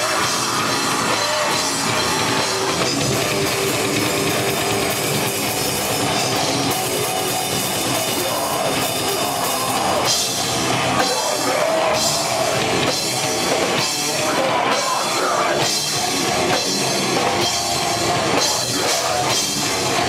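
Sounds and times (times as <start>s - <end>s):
rock band playing live: 0.0s - 20.0s.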